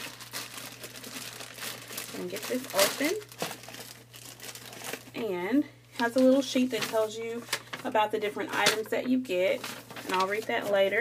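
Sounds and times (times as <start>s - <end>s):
packaging crinkling and tearing: 0.0s - 5.2s, 6.0s - 8.9s, 9.5s - 10.8s.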